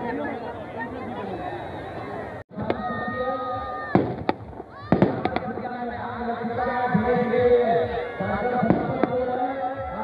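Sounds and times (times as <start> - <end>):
crowd noise: 0.0 - 10.0
firecrackers banging: 3.9 - 5.8, 8.6 - 9.3.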